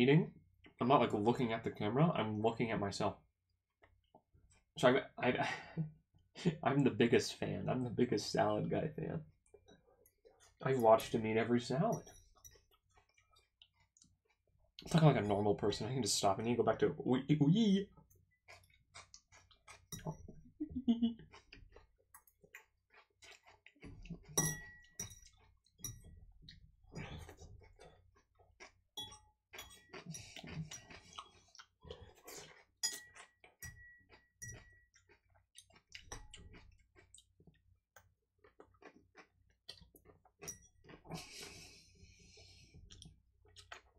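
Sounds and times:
man talking: 0:00.0 - 0:03.2, 0:04.8 - 0:05.8, 0:06.4 - 0:09.2, 0:10.6 - 0:12.0, 0:14.8 - 0:17.9
chewing crunchy salad: 0:12.2 - 0:15.3, 0:18.1 - 0:20.4, 0:21.2 - 0:28.8, 0:29.5 - 0:41.8, 0:42.6 - 0:43.9
small eating clicks: 0:29.6 - 0:41.4.

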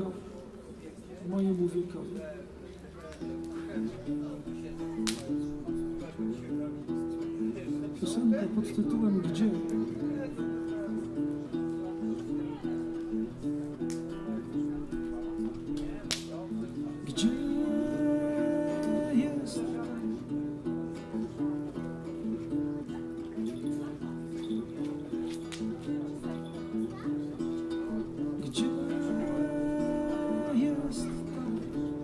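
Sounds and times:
fingerstyle acoustic guitar: 0:03.2 - 0:32.0.

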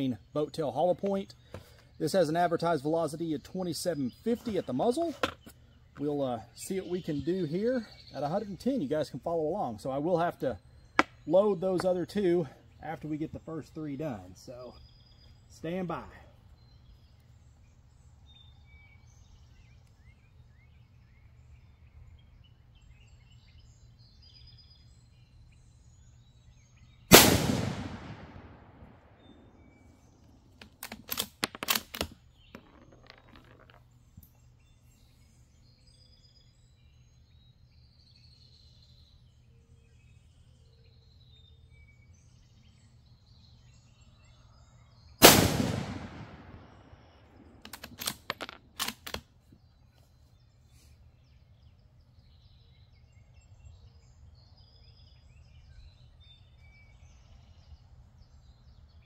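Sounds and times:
birds chirping: 0:00.0 - 0:59.0
rifle shots: 0:27.1 - 0:29.2, 0:45.2 - 0:49.0
rifle bolt metallic clicks: 0:30.6 - 0:33.7, 0:47.6 - 0:49.2.

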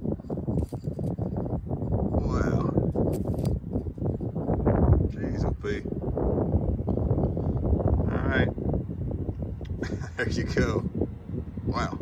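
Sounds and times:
rustling handling noise: 0:00.2 - 0:01.3, 0:03.0 - 0:04.0.

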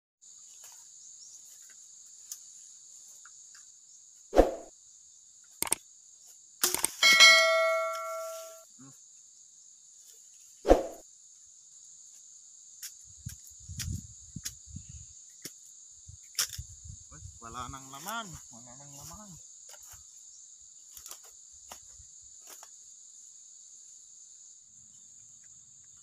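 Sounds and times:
high insect drone: 0:00.2 - 0:26.0
brush rustling: 0:07.0 - 0:08.6.

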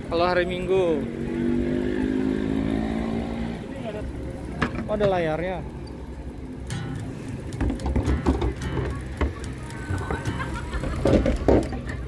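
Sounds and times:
passing vehicle engine hum: 0:00.0 - 0:04.6.

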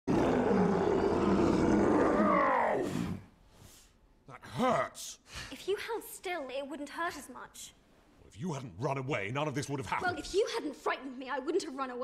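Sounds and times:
creature roaring in pain: 0:00.1 - 0:03.3.

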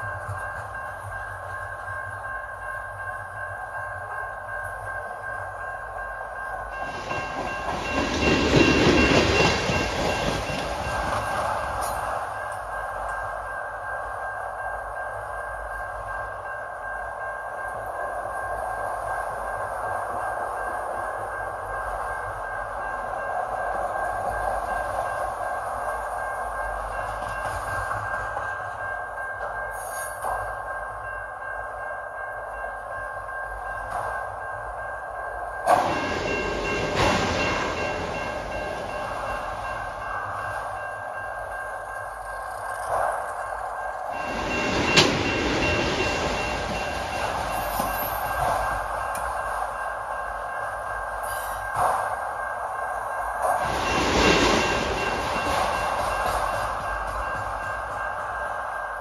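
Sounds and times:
train wheels rumbling on rail: 0:00.0 - 0:59.0
high steady wheel squeal: 0:37.4 - 0:59.0.

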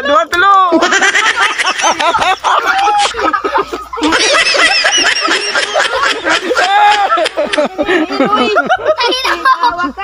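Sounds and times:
people laughing and giggling: 0:00.0 - 0:10.0.

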